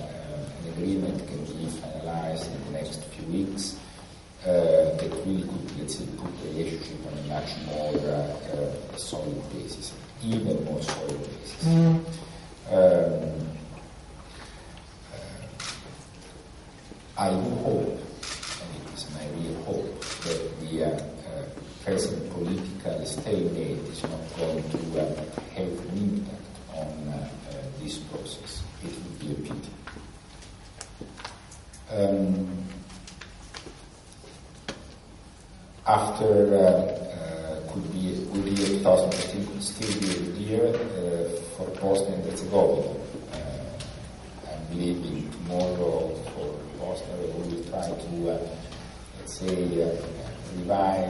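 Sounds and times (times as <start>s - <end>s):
man speaking: 0.0s - 13.7s, 15.0s - 15.7s, 17.2s - 29.9s, 31.8s - 32.9s, 35.7s - 51.0s.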